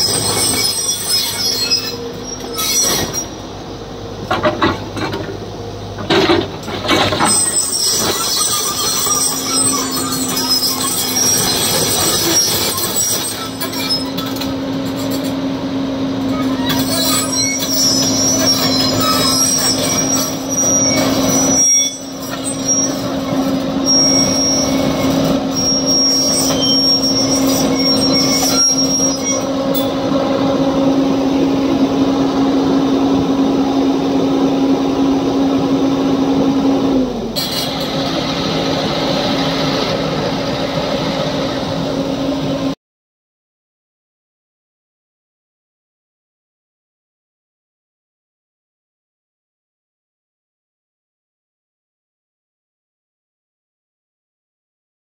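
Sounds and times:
high-pitched metallic squeals: 0:00.0 - 0:03.8, 0:06.1 - 0:35.4
excavator engine humming: 0:00.0 - 0:42.8.

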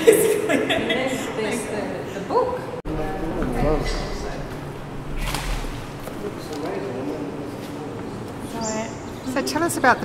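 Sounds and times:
brief swish: 0:05.1 - 0:06.2.

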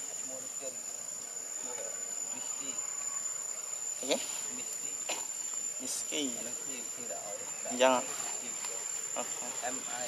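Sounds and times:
insects droning: 0:00.0 - 0:10.0.

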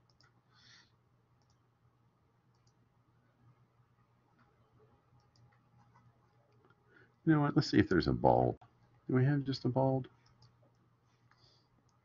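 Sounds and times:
computer mouse clicks: 0:00.0 - 0:00.4, 0:01.4 - 0:01.6, 0:02.5 - 0:02.8, 0:05.1 - 0:06.8, 0:10.2 - 0:12.0.

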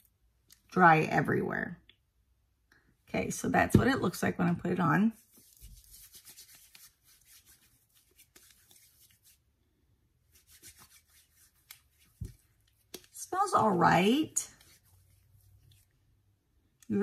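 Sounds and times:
hands rubbing together: 0:05.2 - 0:09.4, 0:10.3 - 0:13.2, 0:14.5 - 0:15.9.

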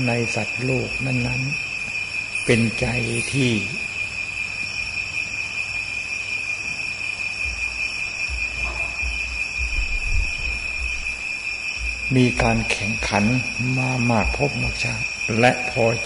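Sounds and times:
high-pitched insect trill: 0:00.0 - 0:16.0
recording hiss: 0:00.0 - 0:16.0
low rumbles: 0:07.4 - 0:15.2.

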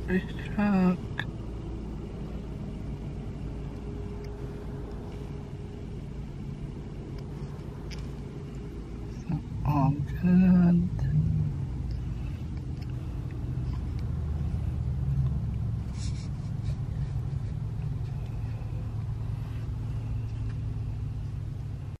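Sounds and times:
car engine running: 0:00.0 - 0:22.0.

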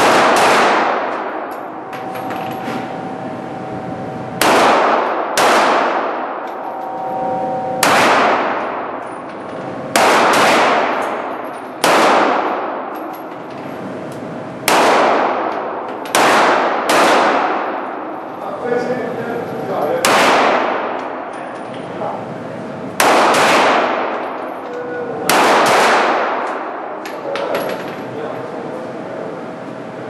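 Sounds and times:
pistol shots echoing indoors: 0:00.0 - 0:03.7, 0:04.3 - 0:13.6, 0:14.6 - 0:18.4, 0:19.9 - 0:21.7, 0:22.9 - 0:28.0.

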